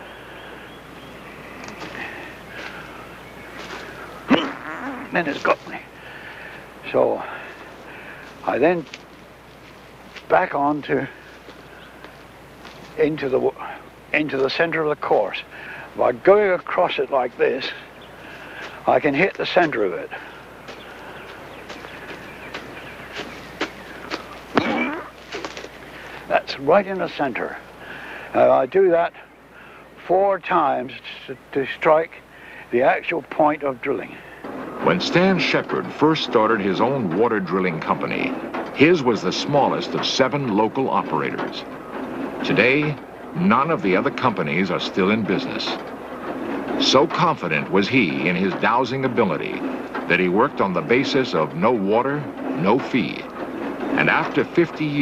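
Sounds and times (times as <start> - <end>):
steady hiss: 0.0 - 55.0
footsteps in grass: 1.5 - 5.8, 7.5 - 13.0, 19.6 - 26.3
soft rustles: 1.6 - 5.8, 7.5 - 10.4, 11.1 - 13.0, 20.3 - 26.3
man's voice: 4.3 - 5.9, 18.8 - 20.2, 34.8 - 41.6, 42.4 - 45.8, 46.8 - 53.3, 54.0 - 55.0.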